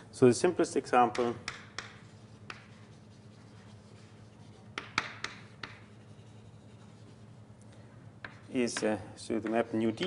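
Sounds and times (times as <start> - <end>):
steady low hum: 0.0 - 10.0
writing on a board: 1.1 - 7.4, 8.2 - 8.9.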